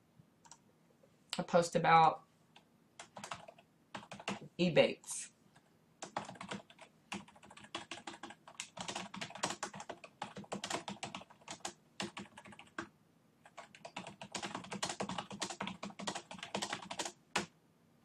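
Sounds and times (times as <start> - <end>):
computer keyboard typing: 3.0 - 4.5, 5.6 - 17.5.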